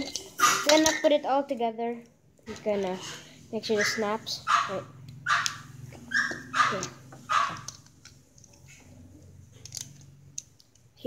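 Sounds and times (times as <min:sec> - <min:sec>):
plastic toy parts clicking: 0:00.0 - 0:01.7, 0:06.7 - 0:08.8, 0:09.5 - 0:11.0
dog barking: 0:00.4 - 0:01.0, 0:03.7 - 0:07.7.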